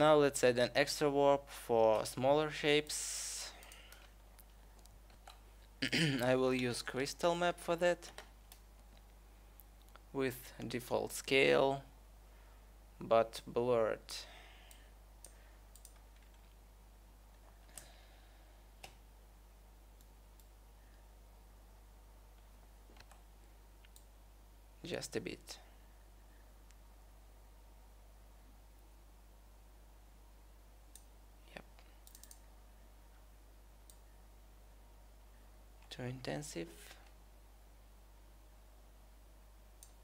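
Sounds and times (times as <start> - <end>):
low steady hum: 0.0 - 40.0
faint computer mouse clicks: 32.0 - 32.4.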